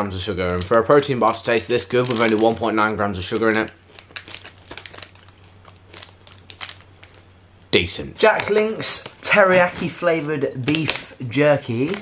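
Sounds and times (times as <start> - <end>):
foil wrapper crinkling: 0.2 - 7.3, 8.2 - 12.0.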